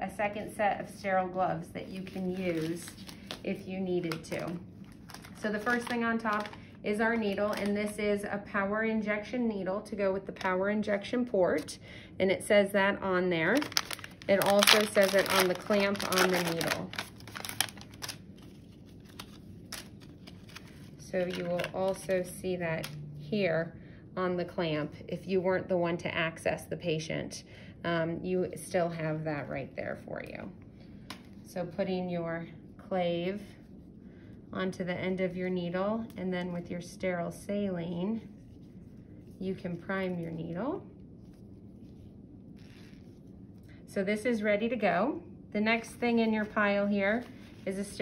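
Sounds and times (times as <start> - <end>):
plastic packaging crinkling: 1.4 - 8.0, 13.4 - 23.0, 41.2 - 43.7
gloved hands handling syringe: 2.0 - 8.0
scratchy rustle: 41.2 - 43.3.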